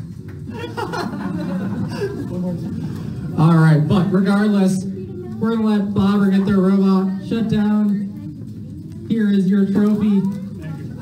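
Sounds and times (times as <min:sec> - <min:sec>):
people talking indistinctly: 0:00.5 - 0:11.0.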